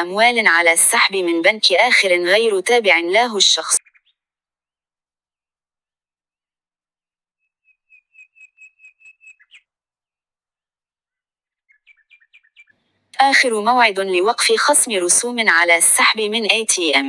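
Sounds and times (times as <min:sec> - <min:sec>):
high bird-like chirps: 0:07.5 - 0:09.7, 0:11.7 - 0:12.7.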